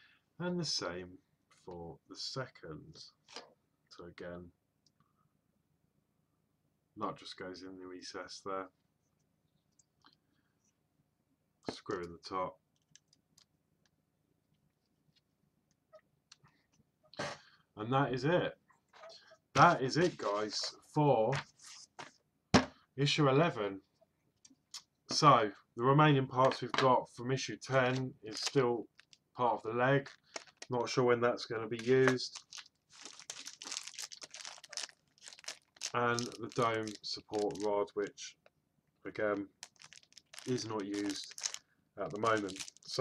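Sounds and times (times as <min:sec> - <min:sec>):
plastic bag crinkling: 0:27.8 - 0:29.4, 0:30.0 - 0:31.0, 0:31.7 - 0:37.9, 0:39.2 - 0:43.0.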